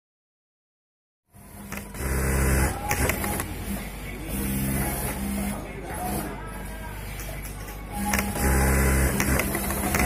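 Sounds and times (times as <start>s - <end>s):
sewing machine stitching: 8.1s - 10.0s.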